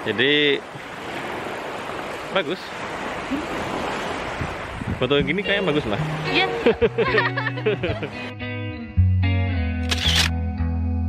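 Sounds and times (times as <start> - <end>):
waves washing on beach: 0.0 - 8.2
wind rumbling on microphone: 0.8 - 6.3.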